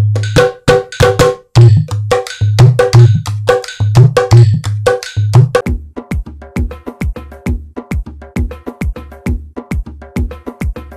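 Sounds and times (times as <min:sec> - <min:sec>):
hand drum fast groove: 0:00.0 - 0:10.9
music with drum beat: 0:00.0 - 0:10.9.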